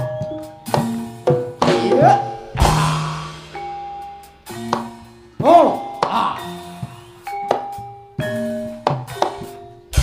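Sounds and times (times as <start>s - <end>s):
gongs and metallophones ringing: 0.0s - 10.0s.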